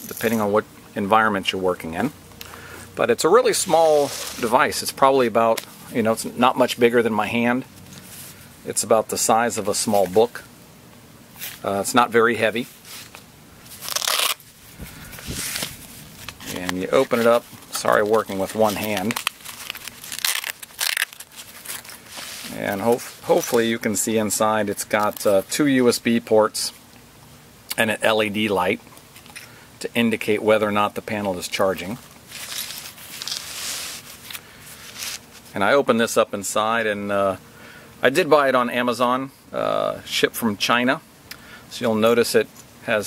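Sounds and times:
fabric cover rustling and scraping: 3.5 - 4.7, 12.6 - 23.6, 32.2 - 35.5.

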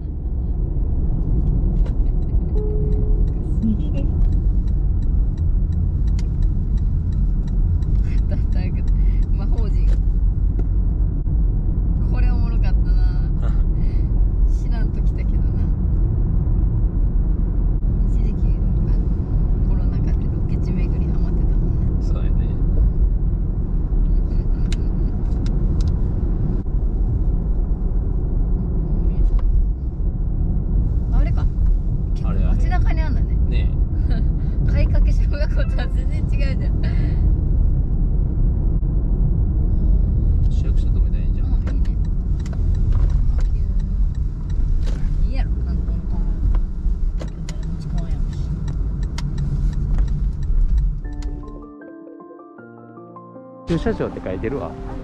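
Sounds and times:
car engine and tyre rumble: 0.0 - 51.6, 53.7 - 55.0.

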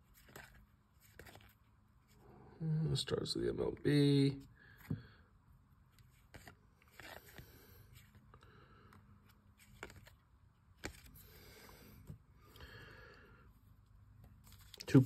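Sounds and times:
paper cards scraping: 0.0 - 2.2, 6.0 - 8.2, 9.2 - 10.2, 10.8 - 11.7
soft ticks of cards flipped: 0.1 - 1.6, 5.9 - 12.2, 14.2 - 14.9.

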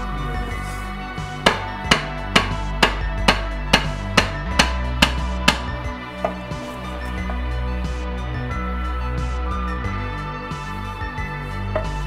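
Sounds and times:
background music: 0.0 - 12.0
rubber mallet striking wooden block: 1.4 - 6.4.

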